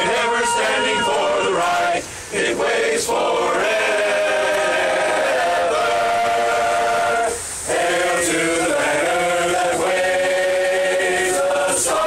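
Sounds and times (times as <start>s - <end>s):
male chorus singing a cappella: 0.0s - 12.0s.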